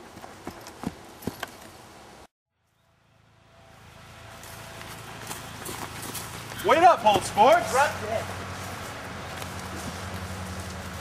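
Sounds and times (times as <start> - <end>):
footsteps running on grass: 4.3 - 11.0.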